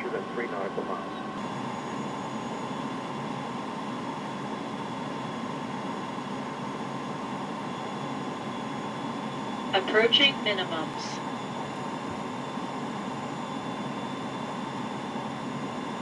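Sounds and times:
airflow and engine hum: 0.0 - 16.0
faint steady tones: 0.0 - 16.0.

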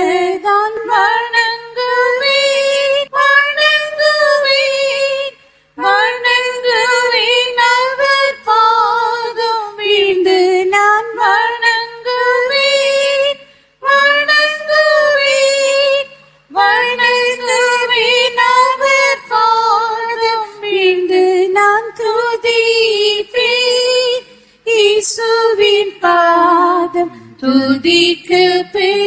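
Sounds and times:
woman singing unaccompanied: 0.0 - 29.0.

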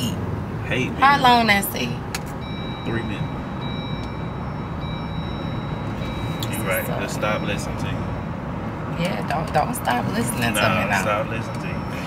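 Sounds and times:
car driving rumble: 0.0 - 12.0
faint high steady tone: 2.4 - 8.4, 10.2 - 12.0.

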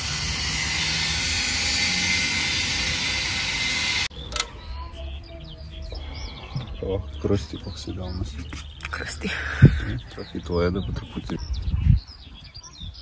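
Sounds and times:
birds chirping: 0.0 - 13.0
click: 4.3 - 4.5.

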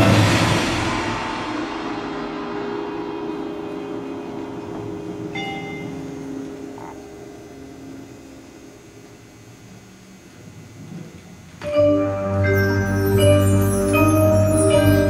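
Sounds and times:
low held musical chord: 2.5 - 9.0, 11.6 - 15.0.

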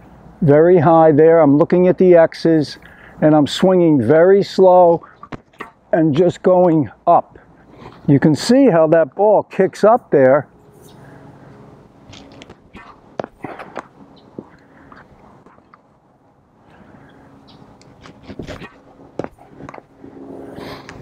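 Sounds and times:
faint outdoor background: 0.0 - 21.0.

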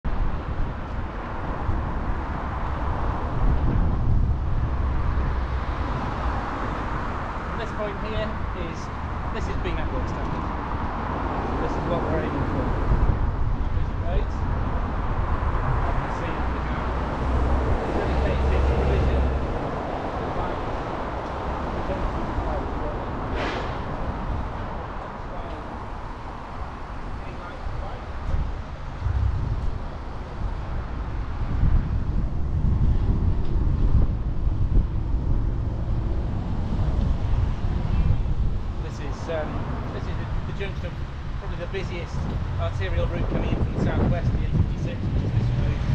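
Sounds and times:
traffic passing: 0.0 - 45.9
wind rumble on microphone: 0.0 - 45.9.

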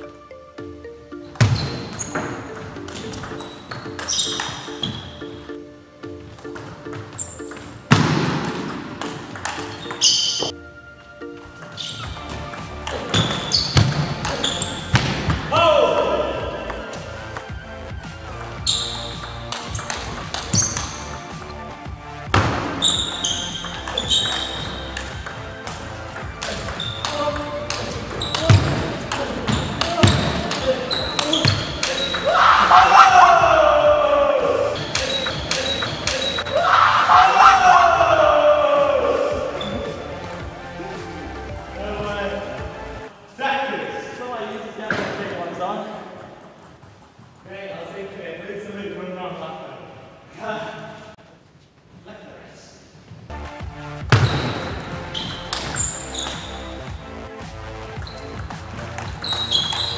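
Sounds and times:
background music: 0.0 - 51.2, 53.2 - 59.9
table tennis ball clicking: 9.0 - 10.0, 34.8 - 36.5.

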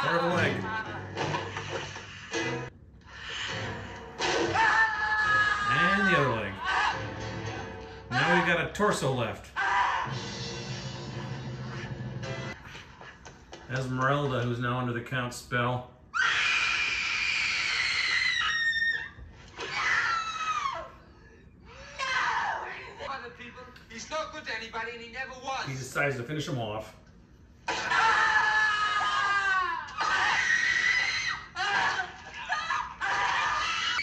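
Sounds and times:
woman screaming: 4.5 - 6.0, 16.1 - 21.0, 21.7 - 23.0, 27.7 - 34.0.

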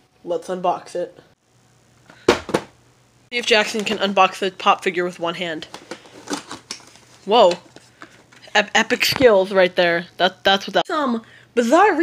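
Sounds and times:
sharp handling knocks: 2.2 - 2.8.

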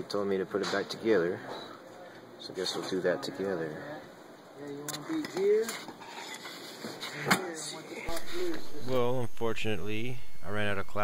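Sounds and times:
steady low hum: 7.8 - 11.0.

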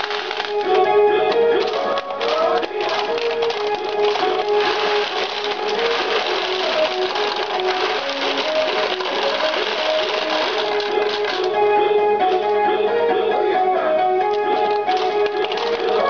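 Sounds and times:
clatter of steel balls: 0.0 - 0.7, 1.6 - 11.5, 14.3 - 16.0.

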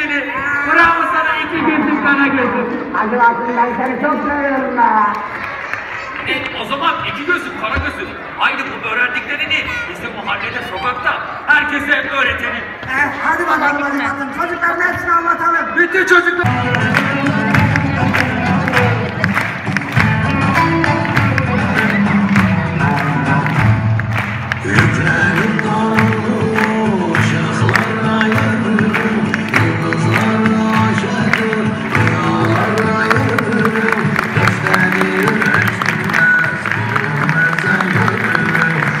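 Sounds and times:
crowd clapping along: 3.8 - 7.6, 16.4 - 39.0
loud music: 16.3 - 39.0
audience applause: 16.5 - 39.0.

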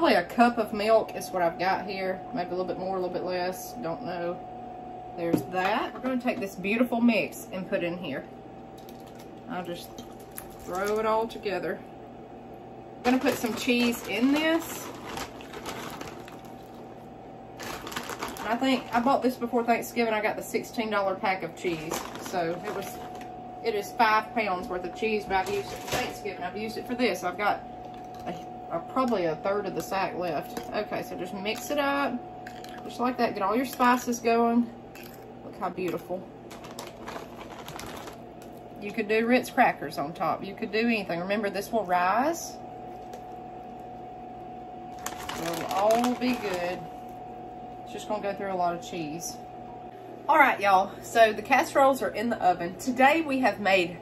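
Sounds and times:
faint steady hum: 0.0 - 54.0
hands rustling shredded cheese: 13.1 - 16.9.

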